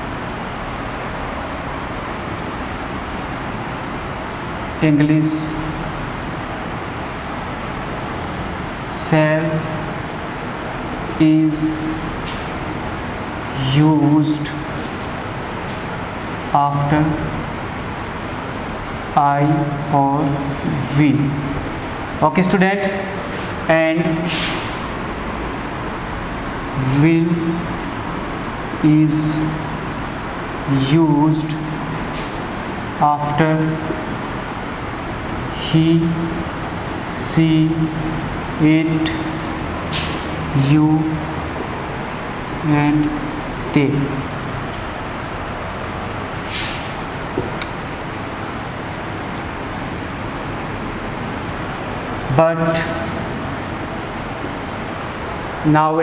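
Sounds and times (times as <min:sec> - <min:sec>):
rushing background noise: 0:00.0 - 0:56.0
steady background noise: 0:00.0 - 0:56.0
brief hiss: 0:46.4 - 0:47.0.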